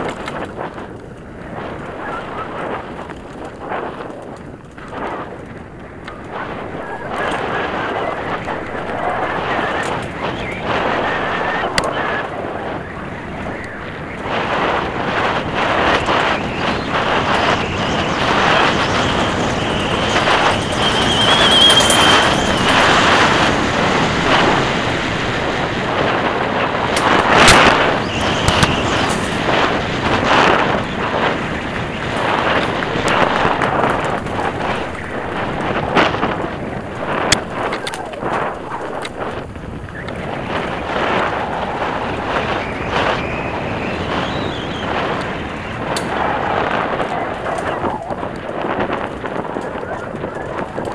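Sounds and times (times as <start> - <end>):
bike tyre rumble on gravel: 0.0 - 50.9
wind on microphone: 0.0 - 50.9
brief high squeal: 19.0 - 23.3.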